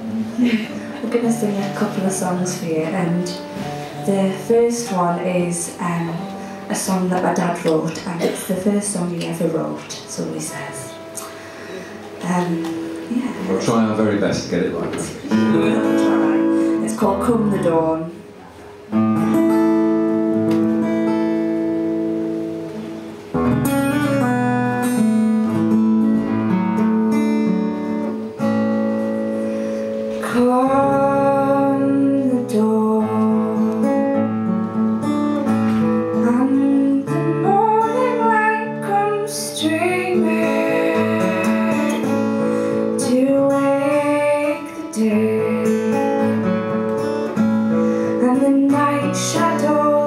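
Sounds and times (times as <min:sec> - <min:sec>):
acoustic guitar chords: 0:00.0 - 0:50.0
woman singing: 0:00.3 - 0:11.3, 0:12.2 - 0:13.5, 0:15.6 - 0:18.2, 0:30.1 - 0:34.2, 0:36.0 - 0:46.7, 0:48.0 - 0:50.0.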